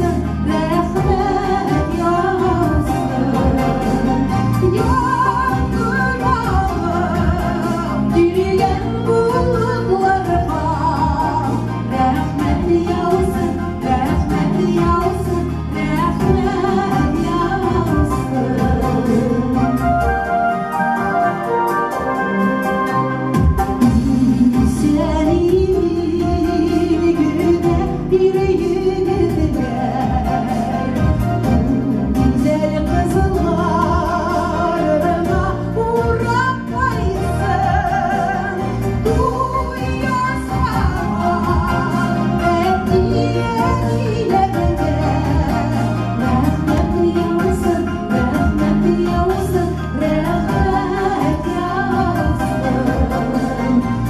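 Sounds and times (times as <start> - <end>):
women singing together: 0.0 - 19.7, 31.6 - 54.0
amplified accompaniment with steady beat: 0.0 - 54.0.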